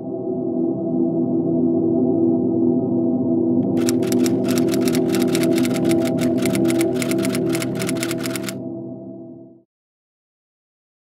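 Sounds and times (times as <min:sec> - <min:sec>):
low musical drone: 0:00.0 - 0:09.6
typewriter key clacks: 0:03.7 - 0:08.6.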